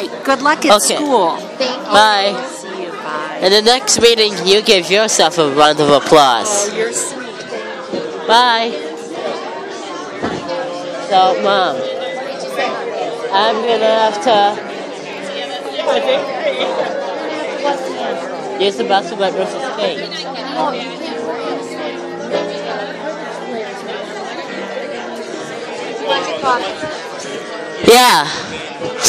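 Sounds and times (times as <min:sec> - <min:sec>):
crowd chatter in a large room: 0:00.0 - 0:29.0
brief bump: 0:10.2 - 0:10.6.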